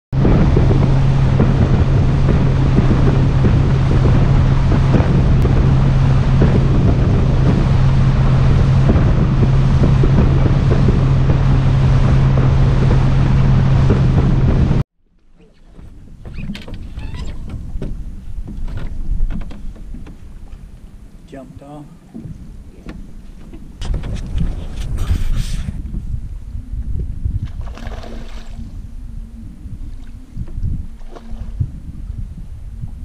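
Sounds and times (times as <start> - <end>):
wind noise on microphone: 0.1 - 14.8, 15.4 - 21.4, 22.0 - 33.0
boat engine drone: 0.2 - 33.0.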